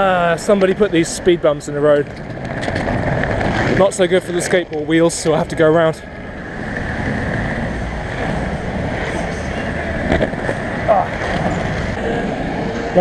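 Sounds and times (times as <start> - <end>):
skateboard wheels rolling on asphalt: 0.0 - 13.0
wind on microphone: 2.0 - 3.9, 6.0 - 13.0.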